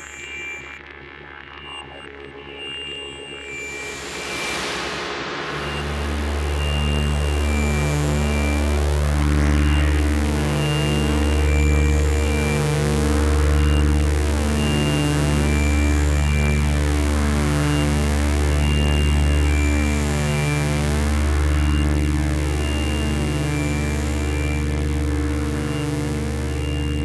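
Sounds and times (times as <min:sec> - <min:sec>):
deep bass drone: 0:00.0 - 0:27.0
pulsing synth tones: 0:00.0 - 0:27.0.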